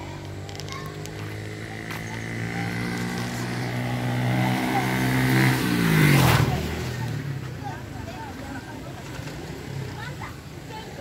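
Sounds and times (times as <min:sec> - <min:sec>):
motor vehicle passing by: 0:00.0 - 0:11.0.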